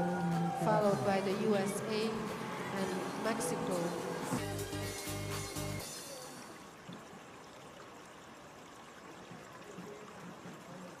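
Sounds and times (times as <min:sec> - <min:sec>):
faint rushing background noise: 0:00.0 - 0:11.0.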